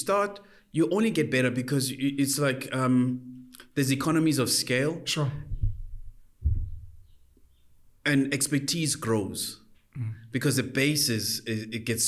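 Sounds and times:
dull low thump: 0:05.5 - 0:07.2.

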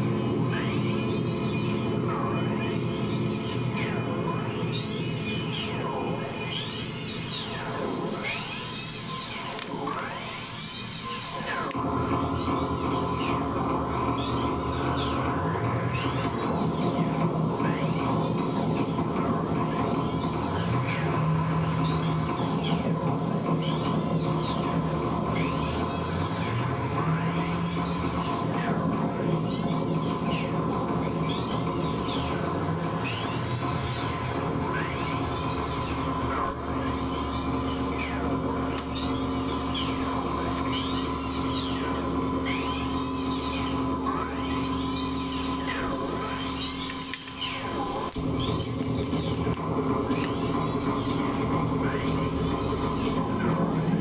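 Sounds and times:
guitar effects drone: 0:00.0 - 0:54.0.

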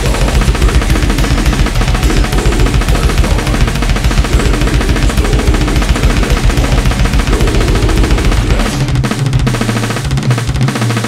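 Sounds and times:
rapid electronic drum kick and snare: 0:00.0 - 0:11.0
recorded metal song: 0:00.0 - 0:11.0.

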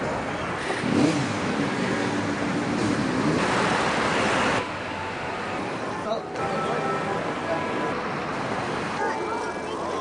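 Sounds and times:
street traffic: 0:00.0 - 0:10.0
vehicle engine accelerating: 0:00.5 - 0:04.7.

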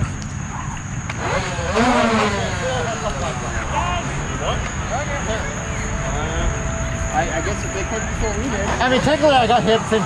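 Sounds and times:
people calling out: 0:01.8 - 0:09.6
steady high-pitched tone: 0:02.8 - 0:10.0
low rumble: 0:03.1 - 0:09.0.

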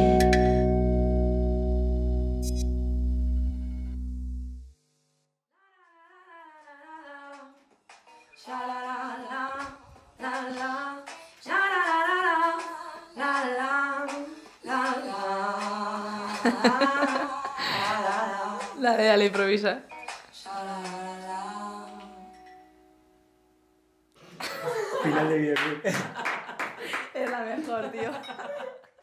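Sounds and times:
guitar and bass chord: 0:00.0 - 0:04.7
person singing wordless melody: 0:20.4 - 0:22.4.

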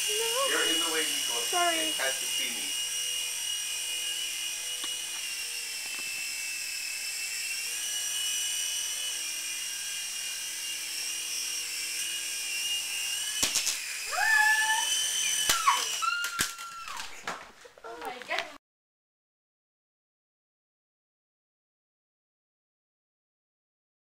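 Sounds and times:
rc helicopter motor whining: 0:00.0 - 0:18.4.

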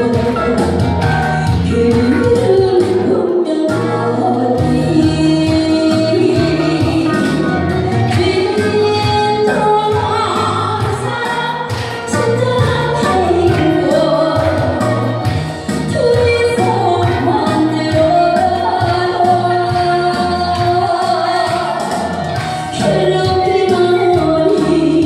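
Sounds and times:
instrumental accompaniment with steady beat: 0:00.0 - 0:25.0
woman singing into microphone: 0:00.0 - 0:25.0.

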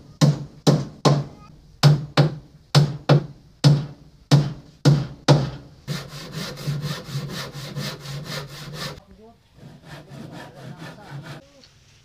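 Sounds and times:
sawing strokes: 0:05.9 - 0:09.0, 0:09.6 - 0:11.5.

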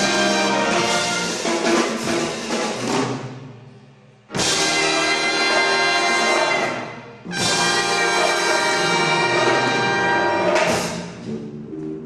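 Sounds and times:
big band holding loud chord: 0:00.0 - 0:03.3, 0:04.3 - 0:11.4.

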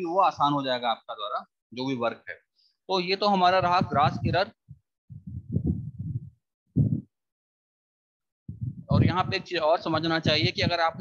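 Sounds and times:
muffled low rumbling and knocking: 0:03.6 - 0:07.1, 0:08.5 - 0:09.5, 0:10.2 - 0:10.9.

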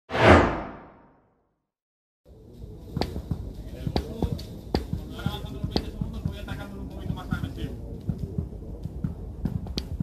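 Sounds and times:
whoosh sound effect: 0:00.1 - 0:01.1.

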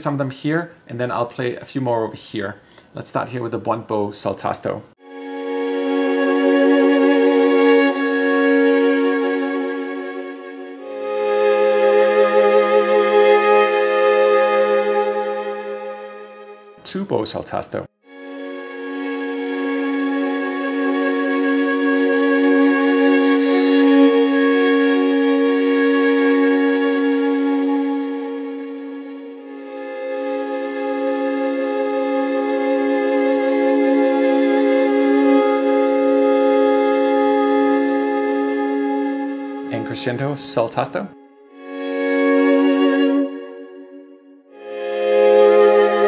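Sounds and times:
solo violin sustained notes: 0:05.0 - 0:46.0.

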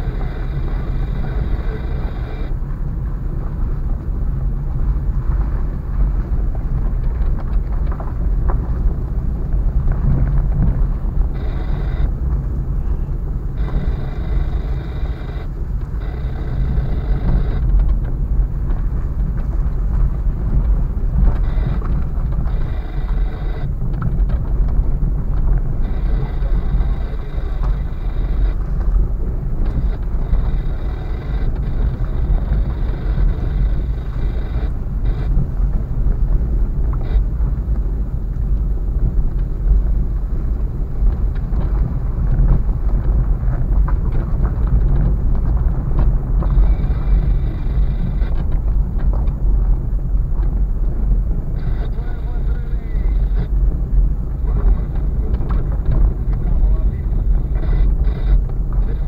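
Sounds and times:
thin whine: 0:00.0 - 0:02.6, 0:11.0 - 0:17.8, 0:21.2 - 0:23.8, 0:25.7 - 0:35.8, 0:46.4 - 0:48.4, 0:51.5 - 0:53.6, 0:54.4 - 0:59.0
engine and tyres rumbling: 0:00.0 - 0:59.0.

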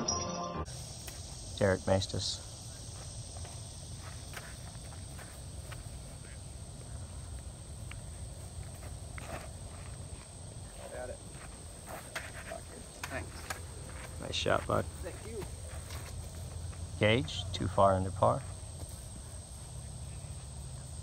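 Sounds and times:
insect trill: 0:00.6 - 0:21.0
faint footsteps: 0:02.3 - 0:17.6, 0:18.2 - 0:19.8.

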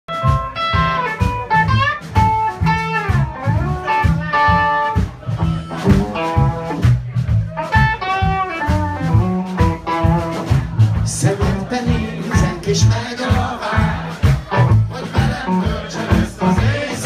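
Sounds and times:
electric guitar lead line: 0:00.1 - 0:10.8
bass guitar rhythm: 0:00.1 - 0:17.0
drums: 0:00.1 - 0:17.0.

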